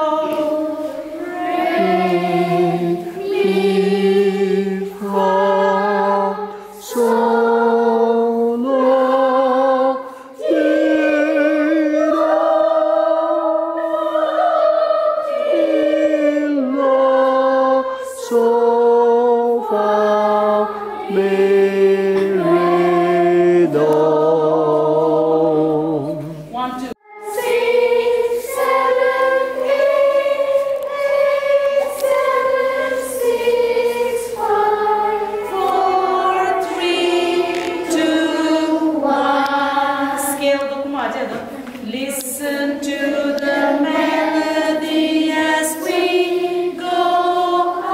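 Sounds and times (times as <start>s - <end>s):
children singing: 0.0s - 26.3s, 27.0s - 40.8s, 41.4s - 47.9s.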